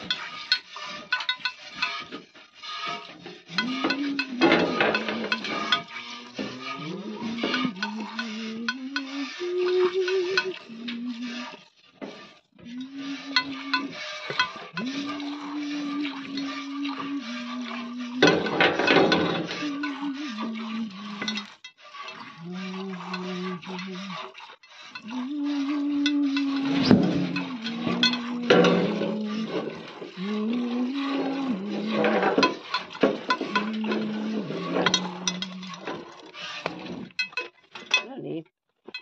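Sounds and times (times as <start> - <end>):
milk squirting into metal bucket: 0.0 - 38.1
person singing slow tune: 3.6 - 5.4, 6.2 - 11.6, 12.6 - 14.0, 14.8 - 21.5, 22.4 - 24.2, 25.0 - 32.2, 33.5 - 35.9.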